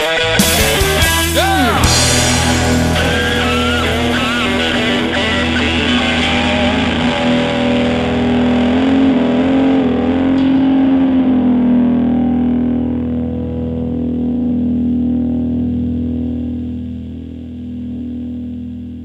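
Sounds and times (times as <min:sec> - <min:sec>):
distorted electric guitar: 0:00.0 - 0:19.0
low accompaniment: 0:00.0 - 0:19.0.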